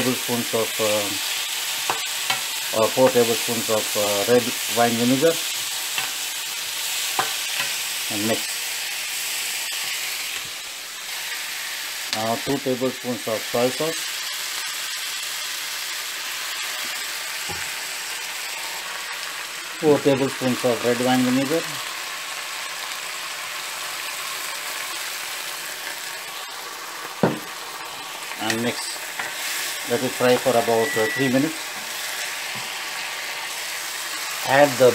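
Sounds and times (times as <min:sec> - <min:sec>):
vegetables sizzling in a frying pan: 0:00.0 - 0:34.9.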